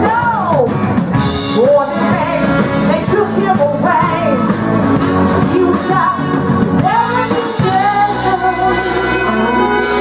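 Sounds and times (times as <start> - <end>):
blues band playing: 0.0 - 10.0
woman singing: 1.5 - 10.0.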